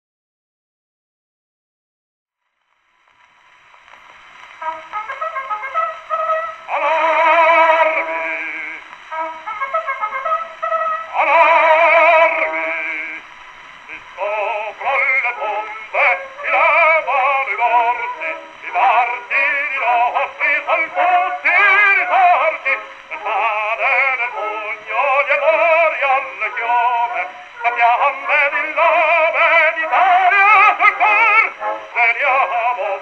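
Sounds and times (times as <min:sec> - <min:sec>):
tenor singing on old record: 0:04.1 - 0:33.0.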